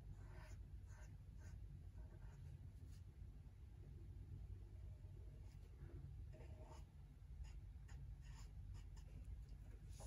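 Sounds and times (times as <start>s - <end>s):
marker scratching on paper: 0.0s - 3.0s, 6.3s - 9.2s.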